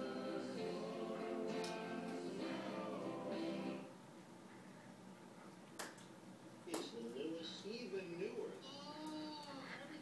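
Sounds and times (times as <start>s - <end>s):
sharp finger snaps: 5.8s - 6.1s.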